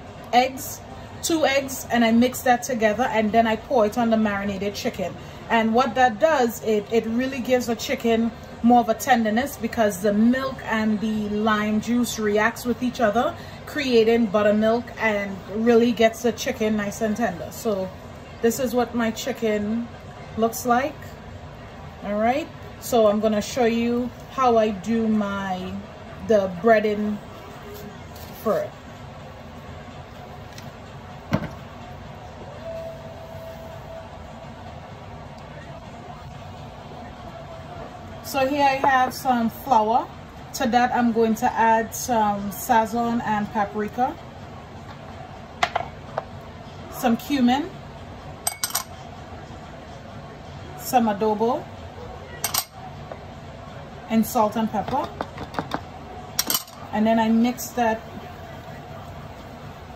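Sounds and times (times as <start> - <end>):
low background hum: 0.0 - 59.9
faint steady tone: 32.2 - 38.1
glass jar clinking on bowl: 48.5 - 49.0, 52.4 - 52.8.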